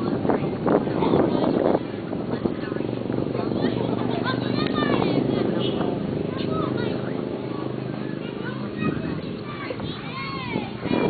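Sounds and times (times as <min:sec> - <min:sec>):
people talking: 0:00.0 - 0:11.0
wind rumble on microphone: 0:00.0 - 0:11.0.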